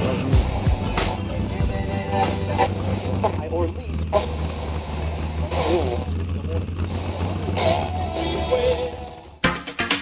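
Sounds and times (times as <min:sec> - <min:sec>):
voices talking: 0:00.0 - 0:09.1.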